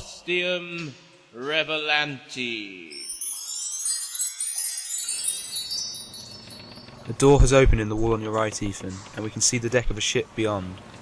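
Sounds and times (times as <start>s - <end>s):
tinkling high chimes: 2.8s - 8.8s.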